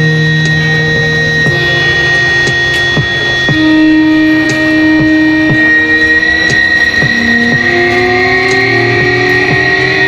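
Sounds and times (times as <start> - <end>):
distorted electric guitar: 0.0 - 10.0
drum hits: 1.5 - 9.7.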